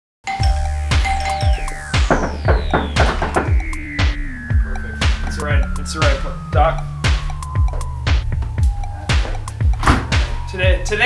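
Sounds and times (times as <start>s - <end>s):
music with drum beat: 0.3s - 11.0s
long falling sweep: 0.5s - 11.0s.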